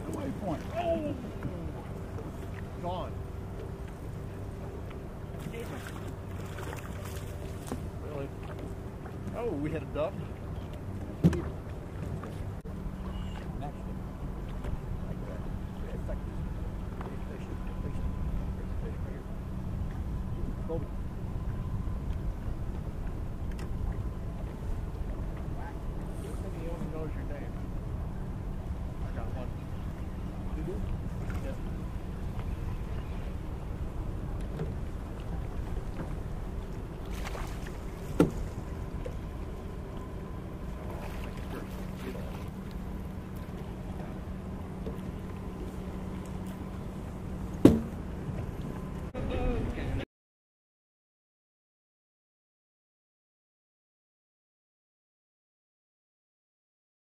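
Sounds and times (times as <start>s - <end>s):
boat motor droning: 0.0s - 50.0s
faint hum: 0.0s - 50.0s
low wind: 0.0s - 50.0s
water noise: 0.0s - 50.0s
sharp knock: 47.6s - 48.0s.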